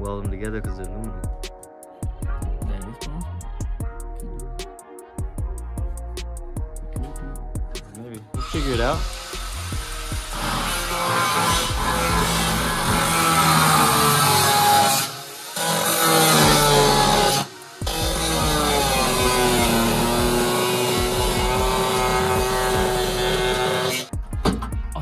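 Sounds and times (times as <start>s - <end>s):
background music: 0.0s - 25.0s
cut-off wheel grinding metal: 8.4s - 24.1s.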